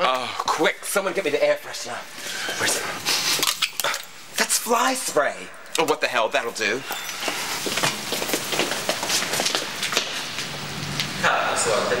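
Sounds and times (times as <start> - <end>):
shuffling: 6.8 - 10.6.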